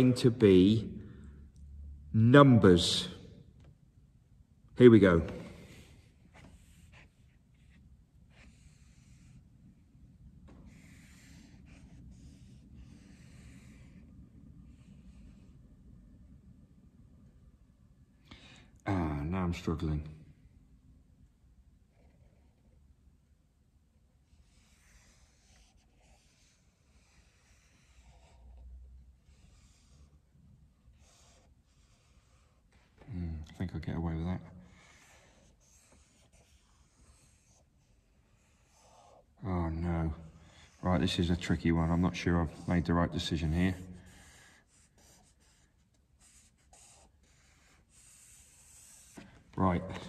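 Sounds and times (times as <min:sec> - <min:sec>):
marker scratching on paper: 0:05.3 - 0:09.8, 0:10.6 - 0:15.6, 0:24.2 - 0:33.0, 0:34.6 - 0:50.0.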